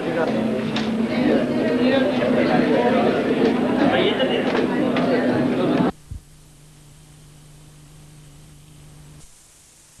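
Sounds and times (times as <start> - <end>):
low electrical hum: 0.0 - 10.0
tape hiss: 5.4 - 10.0.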